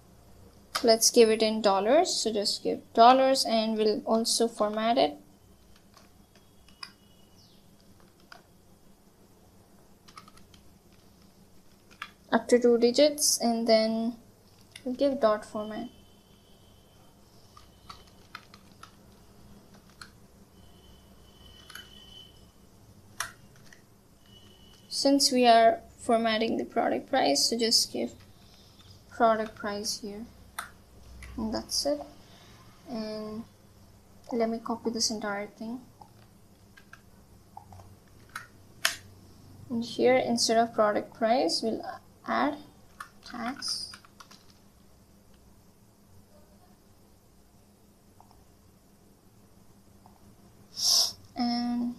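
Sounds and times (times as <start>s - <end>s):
computer keyboard keystrokes: 7.8s - 8.5s, 10.1s - 12.2s, 17.6s - 20.2s, 23.2s - 24.5s, 42.9s - 44.6s.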